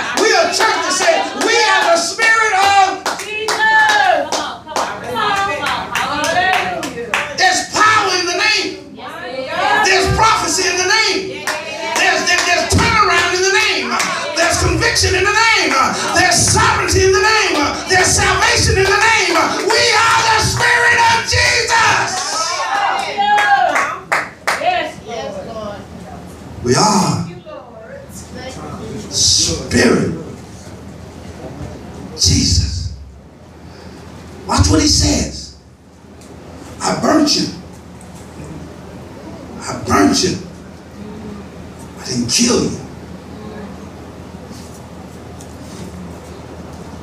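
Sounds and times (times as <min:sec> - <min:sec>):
voices calling out: 0:00.0 - 0:02.9, 0:05.0 - 0:24.1
hand clapping: 0:03.0 - 0:07.3, 0:17.6 - 0:24.7.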